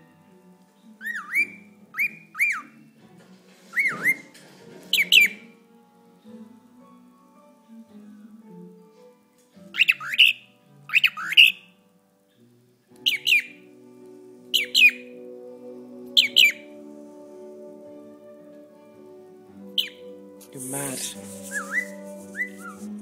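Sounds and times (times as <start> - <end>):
cockatiel chirping: 1.0 - 2.8, 5.0 - 5.5, 9.8 - 11.6, 13.0 - 13.6, 14.6 - 15.1, 16.2 - 16.7, 19.8 - 20.1, 21.4 - 22.8.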